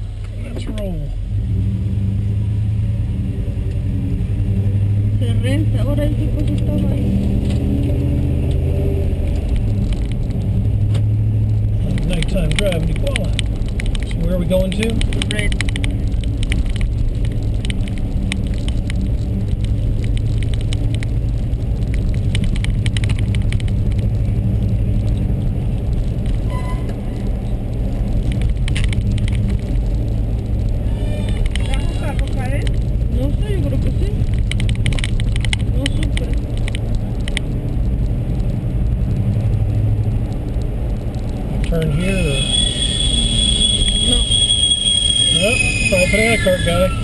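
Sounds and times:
car engine and road hum: 0:00.0 - 0:47.0.

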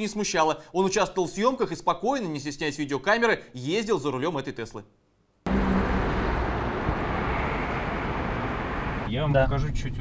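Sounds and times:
tyre noise on road: 0:05.5 - 0:09.1
traffic rumble: 0:05.5 - 0:10.0.

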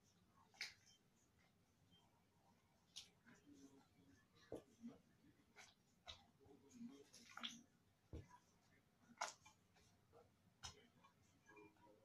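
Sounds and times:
slime squelching: 0:02.7 - 0:11.4.

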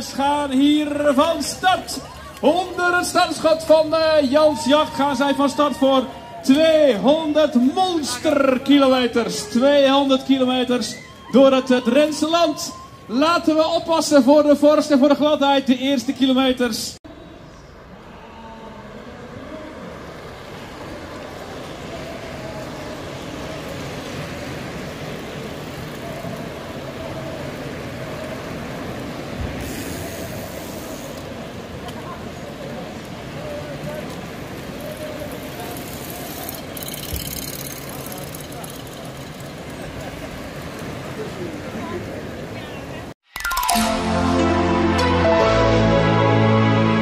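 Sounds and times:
people chattering: 0:00.0 - 0:13.1, 0:17.1 - 0:43.2
bicycles riding on brick pavement: 0:00.0 - 0:15.2, 0:17.3 - 0:43.1.

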